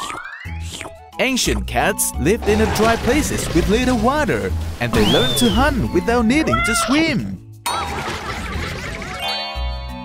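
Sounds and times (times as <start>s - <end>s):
light background music: 0.0s - 10.0s.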